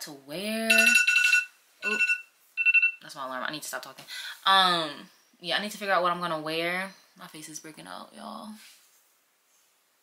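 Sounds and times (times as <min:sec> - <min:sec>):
alarm beeping: 0:00.7 - 0:03.0.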